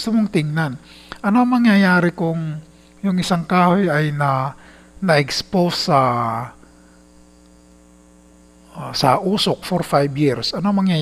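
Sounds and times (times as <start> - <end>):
man's voice: 0.0 - 6.6, 8.8 - 11.0
electrical mains hum: 0.0 - 11.0.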